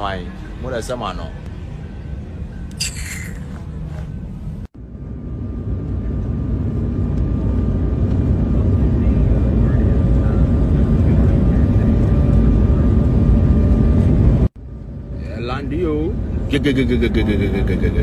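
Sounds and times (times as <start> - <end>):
jet engines low rumble in cabin: 0.0 - 2.8, 3.4 - 18.0.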